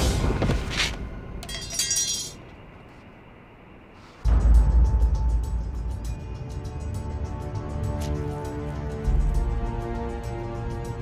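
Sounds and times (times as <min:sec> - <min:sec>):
glass-like crash: 0:01.4 - 0:02.4
dramatic background music: 0:04.2 - 0:11.0.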